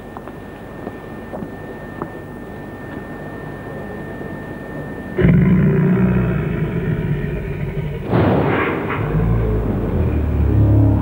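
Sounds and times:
low rumbling drone: 0:04.8 - 0:11.0
loud low rumbling chord: 0:05.2 - 0:11.0.

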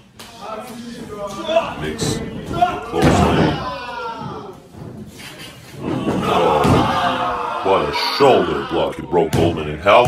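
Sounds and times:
man's voice: 0:00.4 - 0:03.8, 0:07.6 - 0:10.0
bodies hitting with a thud: 0:02.4 - 0:05.0, 0:05.8 - 0:07.2.

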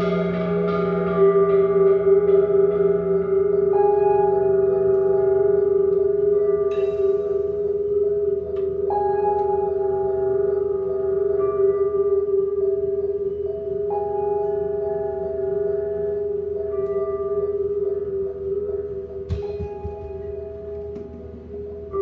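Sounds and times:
improvised drone music: 0:00.0 - 0:22.0.

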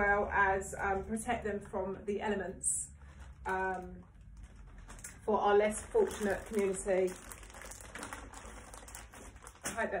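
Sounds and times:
foil packets crinkling: 0:03.0 - 0:10.0.

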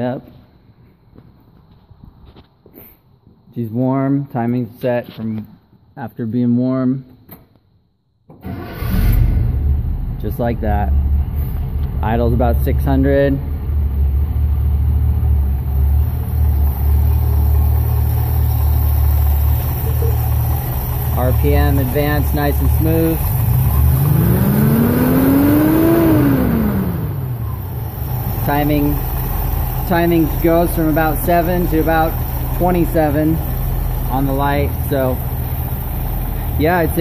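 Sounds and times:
engine starting and idling: 0:08.3 - 0:37.0.

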